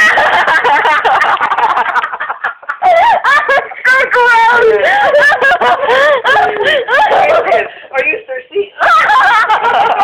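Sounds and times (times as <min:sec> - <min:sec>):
people laughing: 0:00.0 - 0:07.9, 0:08.6 - 0:10.0.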